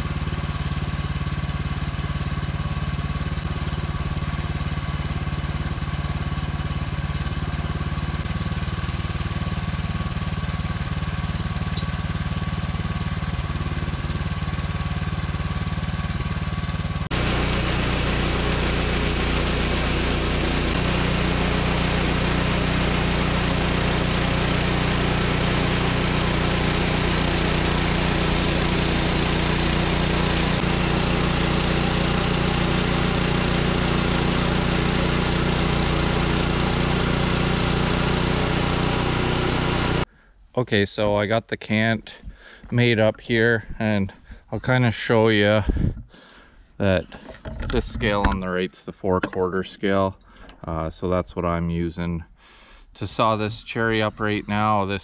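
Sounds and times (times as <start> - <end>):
sawmill engine running: 0.0 - 40.1
band saw cutting log: 17.0 - 40.1.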